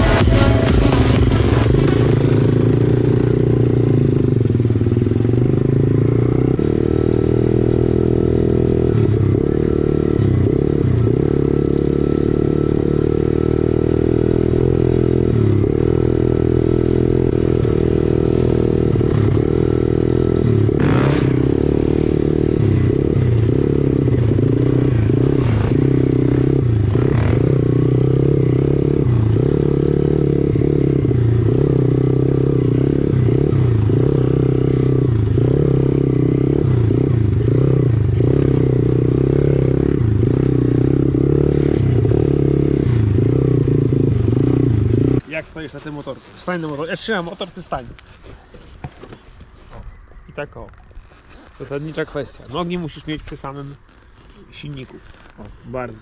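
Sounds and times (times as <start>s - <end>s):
dirt bike engine revving: 0.0s - 48.0s.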